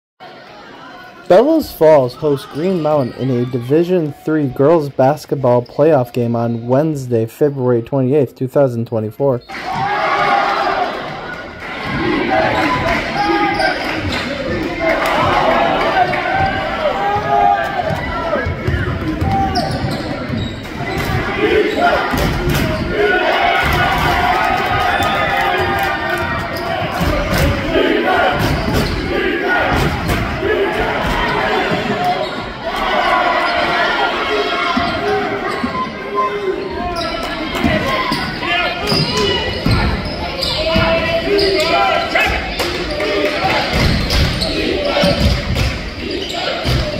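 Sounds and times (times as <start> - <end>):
crowd voices and shouts: 0.2 - 46.9.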